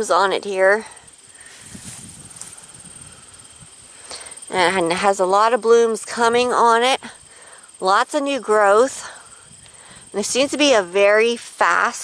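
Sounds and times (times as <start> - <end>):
high-pitched pulsing buzz: 0.0 - 12.0
soft low thumps: 1.4 - 4.0.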